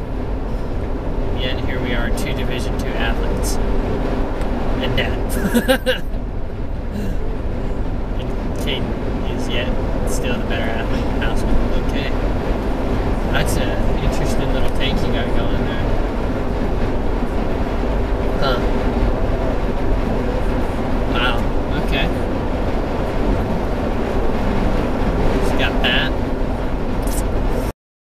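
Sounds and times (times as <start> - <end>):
car road and engine noise: 0.0 - 27.8
person speaking: 4.8 - 6.1, 6.9 - 7.2, 8.2 - 12.1.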